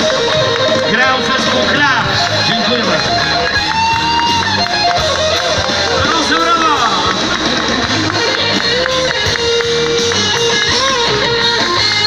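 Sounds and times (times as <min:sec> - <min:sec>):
drums: 0:00.0 - 0:12.0
electric guitar: 0:00.0 - 0:12.0
keyboard: 0:00.0 - 0:12.0.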